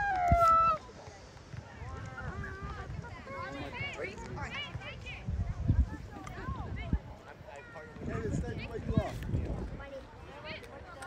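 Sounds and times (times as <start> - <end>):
loud high-pitched shout: 0.0 - 0.8
faint distant voices: 0.0 - 11.0.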